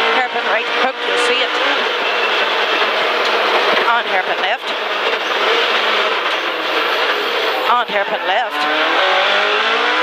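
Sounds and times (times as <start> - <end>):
car engine running hard: 0.0 - 10.0
road and tyre noise: 0.0 - 10.0.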